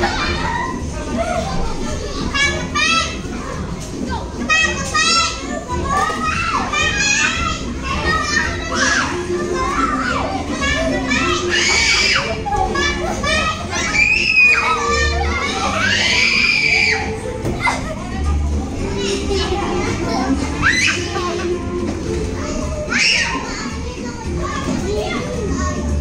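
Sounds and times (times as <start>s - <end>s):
children laughing and shouting: 0.0s - 26.0s
children squealing: 13.7s - 17.1s.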